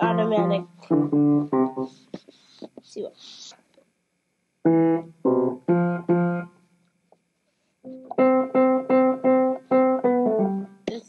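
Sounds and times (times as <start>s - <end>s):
electric piano notes: 0.0s - 2.0s, 4.7s - 6.5s, 7.9s - 11.0s.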